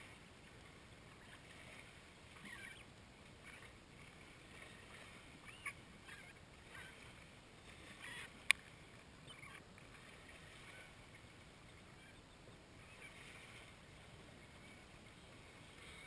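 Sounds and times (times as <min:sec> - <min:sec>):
faint outdoor ambience: 0:00.0 - 0:16.0.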